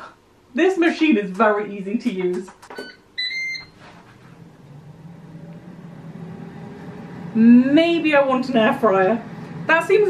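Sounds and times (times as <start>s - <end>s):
air fryer beeping: 2.8s - 3.8s
air fryer fan humming: 3.0s - 10.0s.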